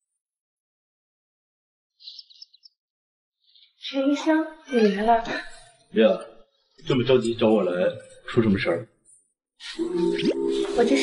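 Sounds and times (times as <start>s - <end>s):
bird chirping: 2.0s - 2.8s, 3.4s - 4.4s
woman's voice: 4.0s - 5.6s, 10.6s - 11.0s.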